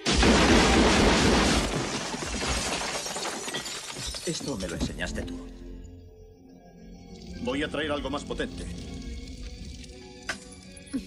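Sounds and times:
shattered glass tinkling: 2.3 - 5.0.

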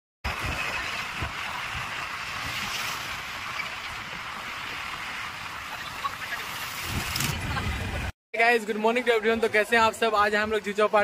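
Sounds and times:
road and wind noise: 0.3 - 8.1.

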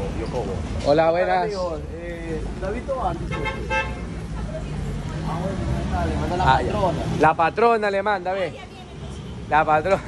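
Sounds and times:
street traffic rumble: 0.0 - 10.0
car horn honking: 3.3 - 4.1.

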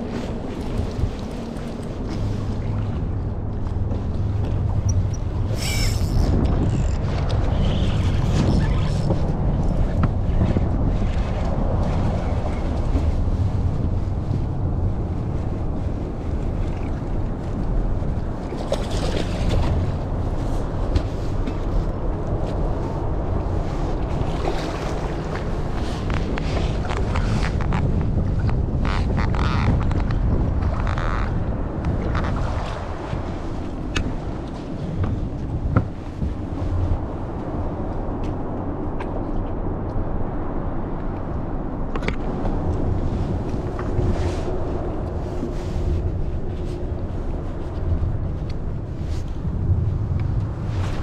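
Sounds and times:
water lapping against boat hull: 0.0 - 40.0
steady low rumbling: 0.0 - 51.0
wind buffeting microphone: 0.0 - 51.0.

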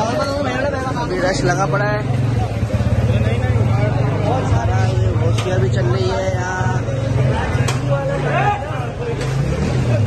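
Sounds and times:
street crowd voices: 0.0 - 10.0
motorcycle engine running: 0.7 - 5.2.

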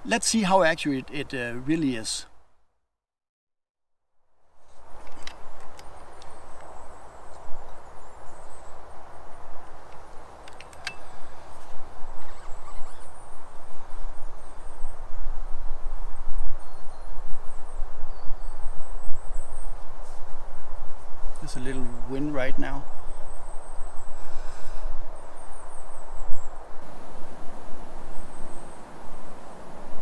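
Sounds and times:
wind gusting through trees: 0.0 - 2.5, 4.5 - 30.0.

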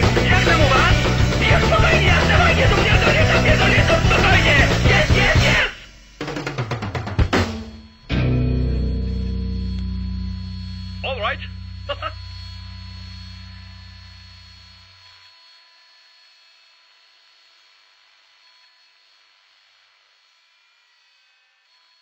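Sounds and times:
low steady hum: 7.8 - 14.8.

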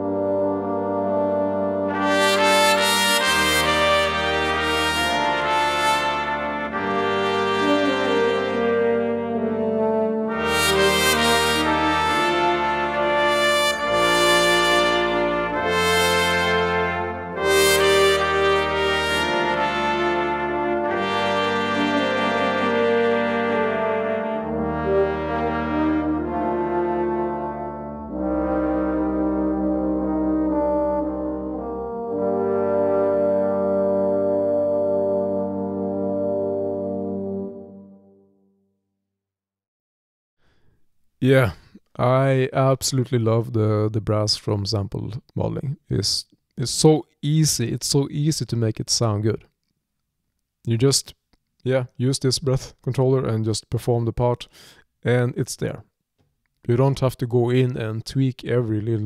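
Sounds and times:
brass section sustained chords: 0.0 - 38.4.

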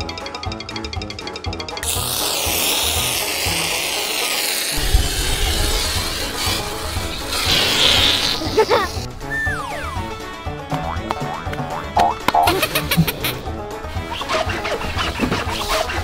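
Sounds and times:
children's music with beat: 0.0 - 1.9, 9.1 - 16.0
aerosol spray hissing: 1.8 - 9.1.

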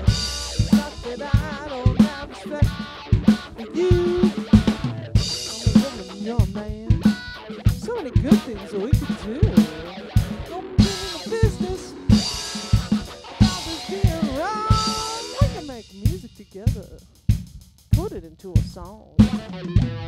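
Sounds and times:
electric guitar bending lead notes: 0.0 - 15.8, 19.2 - 20.0
drum kit steady beat: 0.0 - 20.0.

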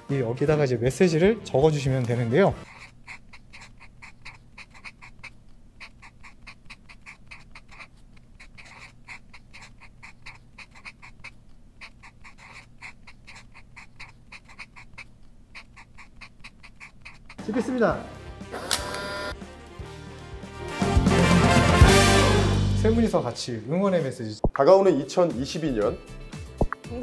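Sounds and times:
marker pens squeaking on paper: 2.6 - 17.4.

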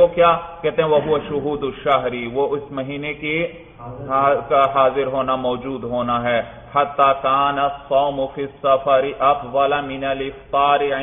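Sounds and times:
man chanting a recitation: 0.0 - 11.0.

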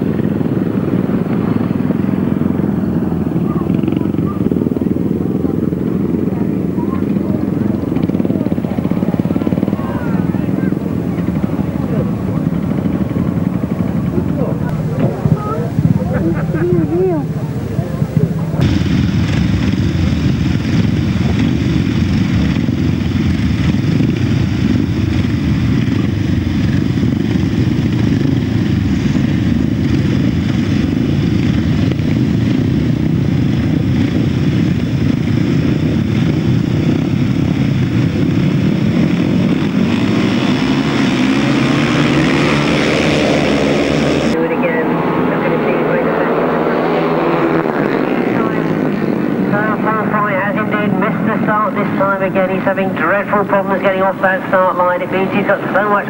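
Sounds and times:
motorcycle engines revving: 0.0 - 56.0
motorcycles racing: 0.0 - 56.0.

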